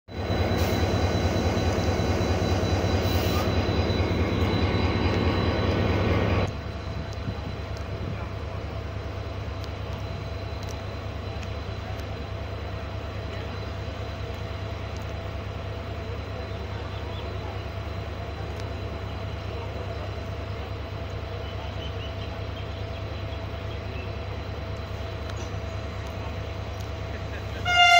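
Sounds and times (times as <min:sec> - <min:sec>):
diesel locomotive engine running: 0:00.1 - 0:27.9
quiet steady hum beside train: 0:00.1 - 0:27.9.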